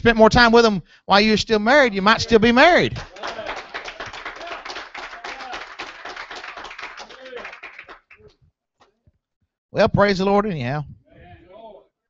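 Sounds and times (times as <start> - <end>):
congregation applauding: 3.0 - 8.3.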